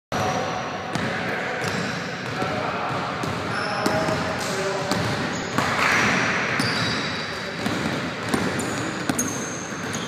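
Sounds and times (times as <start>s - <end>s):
basketball bouncing on hardwood floor: 7.6s - 10.0s.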